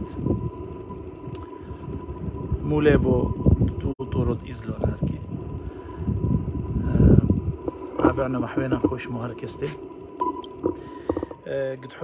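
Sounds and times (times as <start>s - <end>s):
steady high tone: 0.0s - 12.0s.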